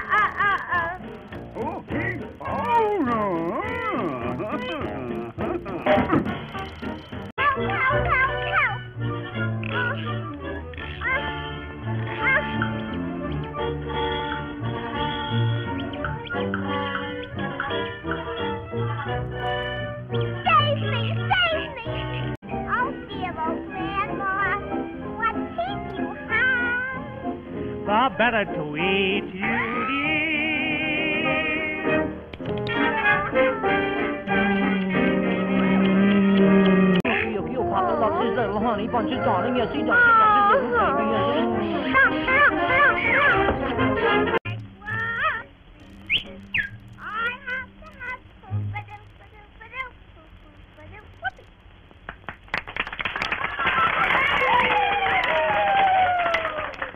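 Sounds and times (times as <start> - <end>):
cartoon band music: 0.0 - 48.8
audience clapping: 51.9 - 56.9.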